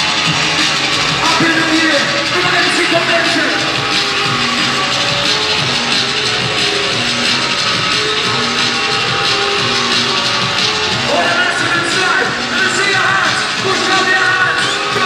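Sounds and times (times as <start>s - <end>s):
loud drum and bass music: 0.0s - 15.0s.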